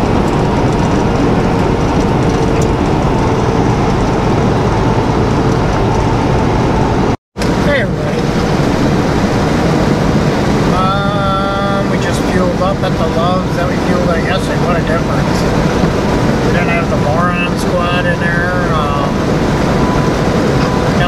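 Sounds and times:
truck engine drone and road noise: 0:00.0 - 0:21.0.

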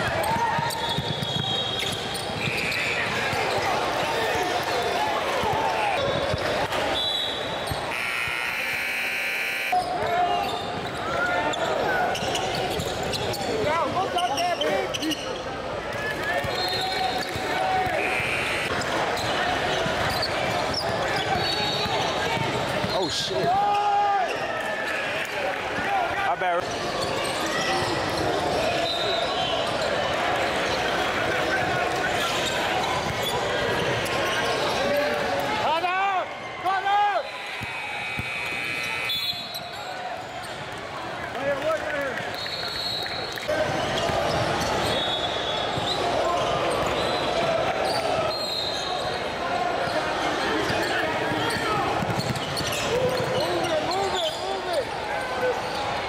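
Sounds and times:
sneakers squeaking: 0:00.0 - 0:15.6, 0:16.3 - 0:23.4, 0:26.6 - 0:31.0, 0:37.4 - 0:40.7, 0:42.4 - 0:56.0
chatter and calls of people: 0:00.0 - 0:56.0.

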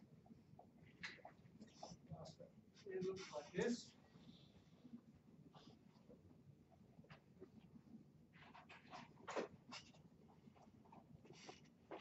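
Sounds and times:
marker squeaking on whiteboard: 0:00.9 - 0:02.1, 0:08.4 - 0:12.0.

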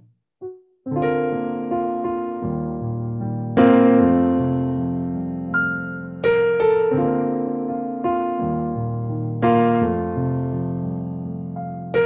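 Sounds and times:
electronic keyboard piano chords: 0:00.0 - 0:12.0.

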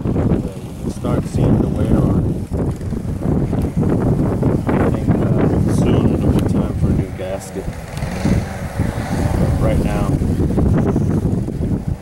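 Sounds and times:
wind buffeting microphone: 0:00.0 - 0:12.0
person's voice: 0:04.7 - 0:07.7, 0:09.4 - 0:10.2.

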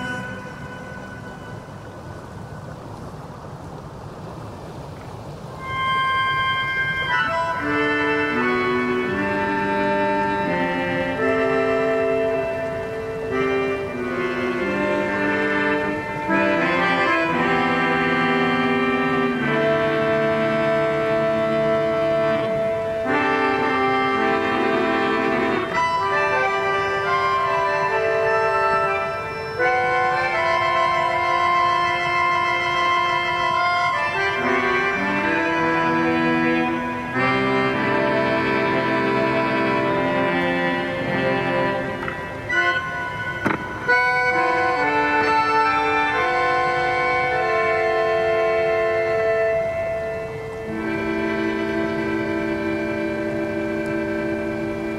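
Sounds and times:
electric melodica chords: 0:00.0 - 0:02.3, 0:05.6 - 0:54.9.

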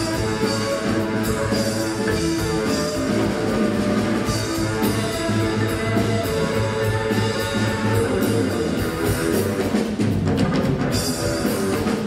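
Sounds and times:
blues band playing: 0:00.0 - 0:12.0
drum kit: 0:00.0 - 0:12.0
electric guitars: 0:00.0 - 0:12.0.

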